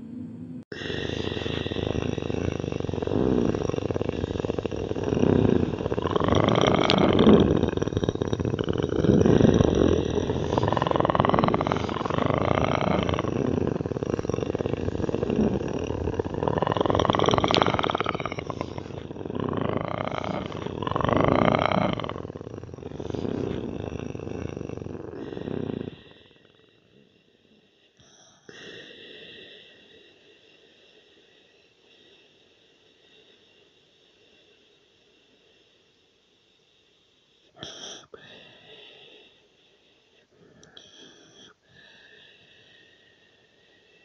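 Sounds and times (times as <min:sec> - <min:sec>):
rough roaring with rising tones: 0:00.0 - 0:25.9.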